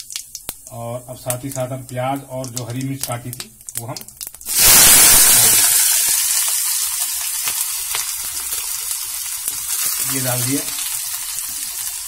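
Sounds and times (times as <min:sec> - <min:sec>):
onion sizzling in hot oil: 0:00.0 - 0:12.0.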